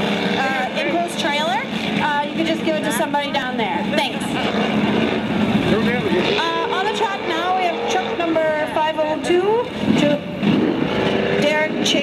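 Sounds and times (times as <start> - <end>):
voices: 0.0 - 10.4, 11.3 - 12.0
truck engine under load: 0.0 - 12.0.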